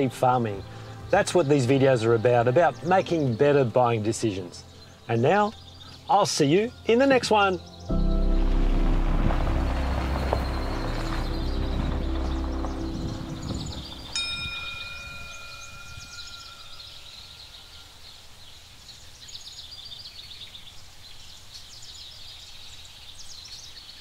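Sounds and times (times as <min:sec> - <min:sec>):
small birds chirping: 0:00.0 - 0:08.4, 0:09.4 - 0:24.0
background music: 0:00.0 - 0:15.8
outdoor ambience: 0:00.0 - 0:24.0
chime note ringing: 0:07.9 - 0:17.8.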